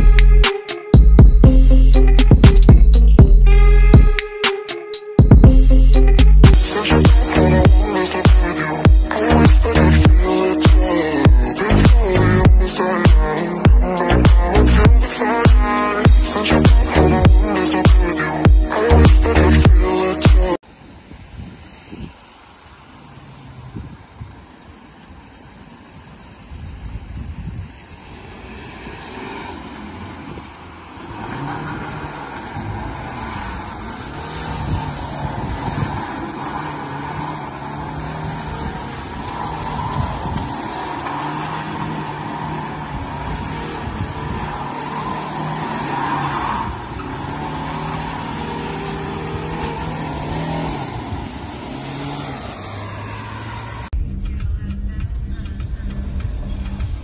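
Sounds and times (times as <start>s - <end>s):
car engine revving hard: 28.2s - 53.9s.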